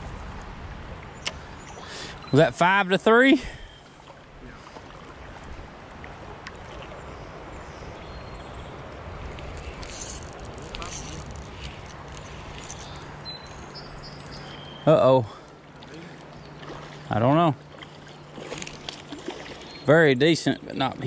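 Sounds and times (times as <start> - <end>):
creek water rippling: 0.0 - 21.0.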